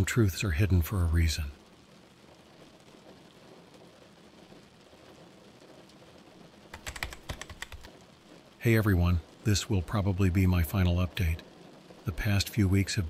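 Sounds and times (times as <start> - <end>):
faint rain hiss: 0.0 - 13.0
fast typing on keyboard: 6.7 - 8.0.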